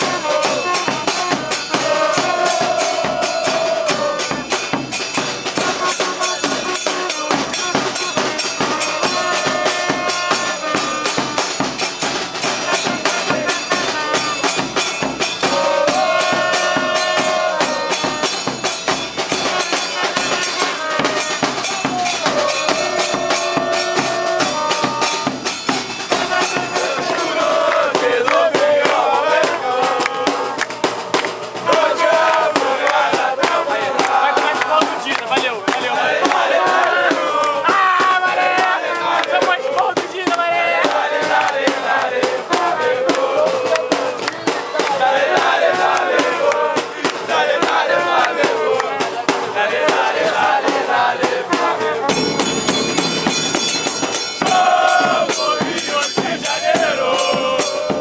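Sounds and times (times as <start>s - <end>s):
bass drums beating: 0.0s - 58.0s
crowd singing a chant: 0.0s - 58.0s
trumpets playing melody: 0.0s - 58.0s.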